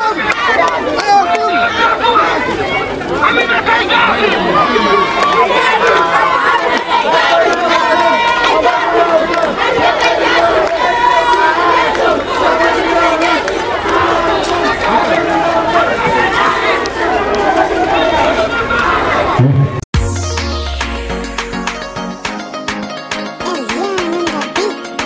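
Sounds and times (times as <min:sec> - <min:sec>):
crowd talking and calling out: 0:00.0 - 0:25.0.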